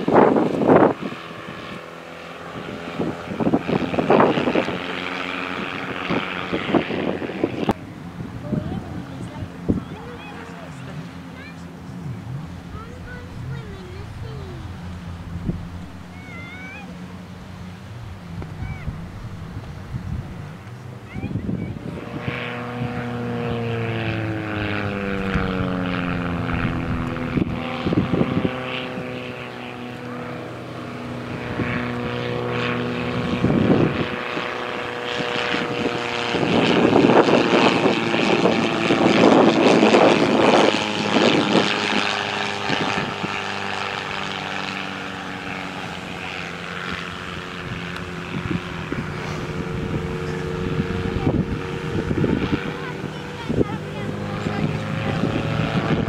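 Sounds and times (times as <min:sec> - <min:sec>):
propeller plane engine: 0:00.0 - 0:56.0.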